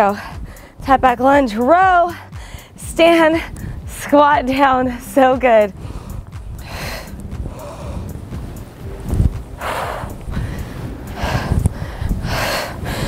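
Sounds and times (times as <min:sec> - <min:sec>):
low thumps on microphone: 0:04.8 - 0:13.0.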